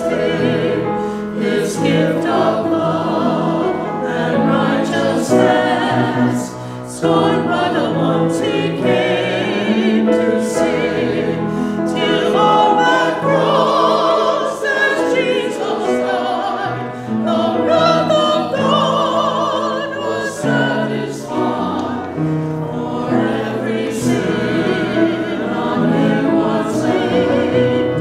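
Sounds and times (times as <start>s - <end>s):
mixed choir singing an anthem: 0.0s - 28.0s.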